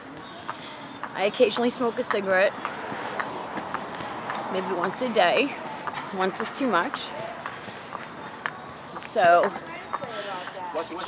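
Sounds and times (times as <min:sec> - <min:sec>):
footsteps walking uphill: 0:00.0 - 0:11.0
outdoor background noise: 0:00.0 - 0:11.0.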